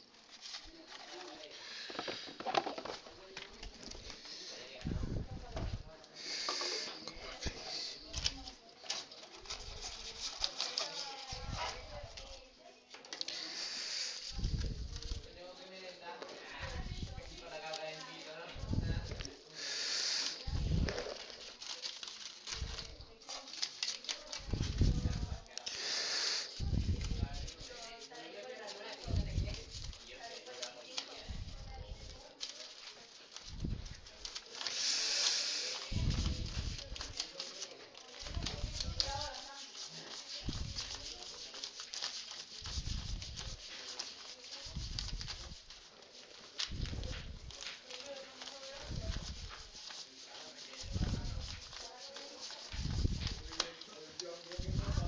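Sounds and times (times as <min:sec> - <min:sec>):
indistinct classroom voices: 0:00.0 - 0:55.0
short hissing bursts: 0:06.2 - 0:08.1, 0:13.3 - 0:14.7, 0:19.6 - 0:20.8, 0:24.6 - 0:27.2, 0:34.7 - 0:36.7.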